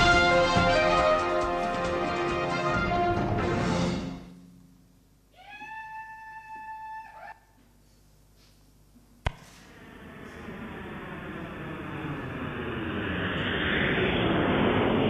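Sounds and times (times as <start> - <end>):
steady held tone: 8.8 - 15.0
jet airplane passing: 9.4 - 15.0.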